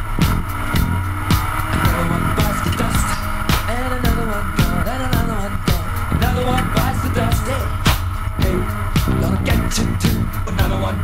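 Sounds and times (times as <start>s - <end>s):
rock music: 0.0s - 11.0s.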